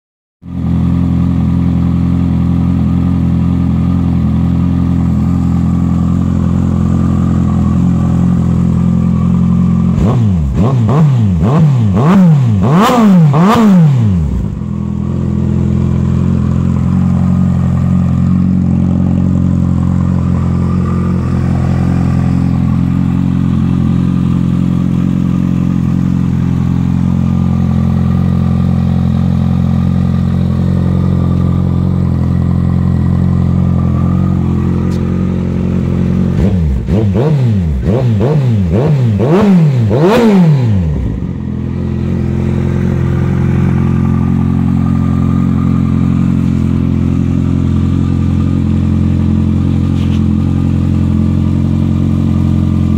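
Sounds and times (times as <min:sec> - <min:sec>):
motorcycle engine idling: 0:00.4 - 0:52.9
motorcycle throttle blips: 0:00.6 - 0:52.9.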